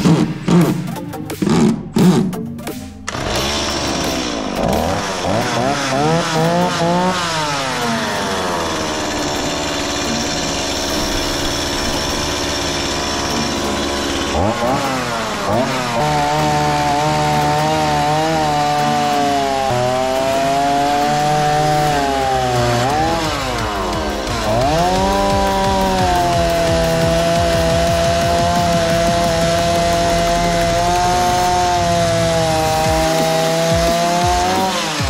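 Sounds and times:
electric saw cutting wood: 0:00.0 - 0:02.3, 0:03.0 - 0:35.0.

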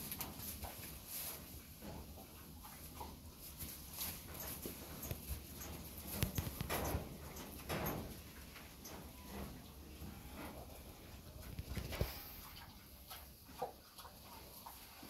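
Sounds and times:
pig snuffling and crunching: 0:00.0 - 0:15.0.

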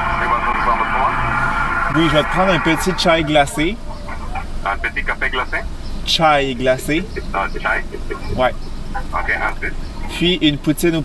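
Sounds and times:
tinny voice through speaker: 0:00.0 - 0:05.7, 0:06.5 - 0:10.7
speaker electronic hum: 0:00.0 - 0:05.9.

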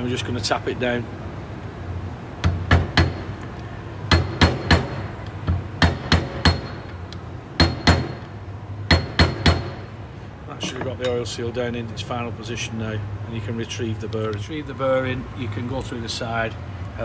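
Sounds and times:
hammer tapping metal: 0:02.4 - 0:03.5, 0:04.1 - 0:10.0.

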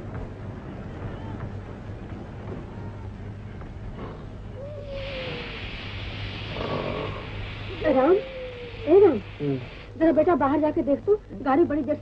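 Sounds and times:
steady hiss: 0:03.1 - 0:12.0
meow-like vocal sounds: 0:04.6 - 0:05.7, 0:07.8 - 0:09.7.

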